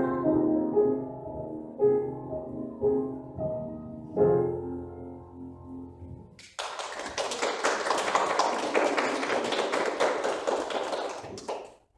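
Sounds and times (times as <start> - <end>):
audience applauding: 6.4 - 11.9.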